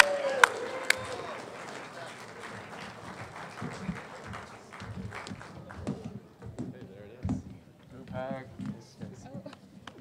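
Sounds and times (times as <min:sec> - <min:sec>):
audience applause: 0:00.0 - 0:05.9.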